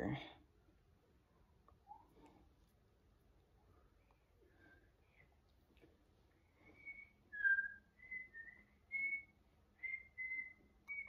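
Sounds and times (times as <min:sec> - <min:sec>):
person whistling a tune: 0:06.7 - 0:11.0.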